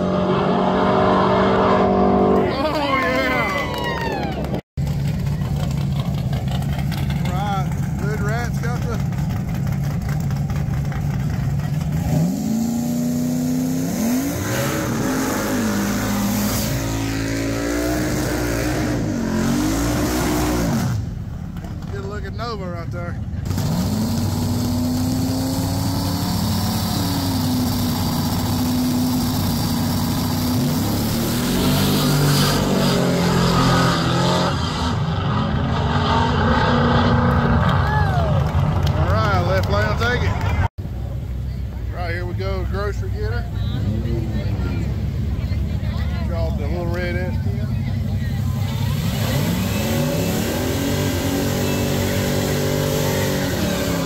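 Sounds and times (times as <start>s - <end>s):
drag racing engines revving: 0.0s - 3.6s, 4.5s - 54.0s
engines accelerating hard: 0.0s - 41.1s, 42.0s - 54.0s.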